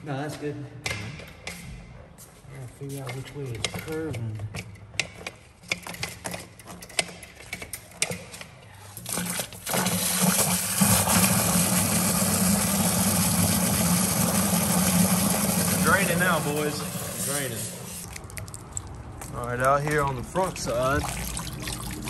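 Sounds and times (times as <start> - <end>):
power drain auger running: 9.1 - 17.8
water rushing down drain: 9.1 - 18.9, 20.0 - 22.0.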